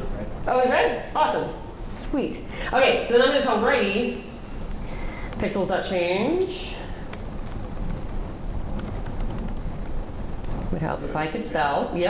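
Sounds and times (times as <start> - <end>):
low steady hum: 0.0 - 12.0
laptop keyboard typing: 7.0 - 10.9.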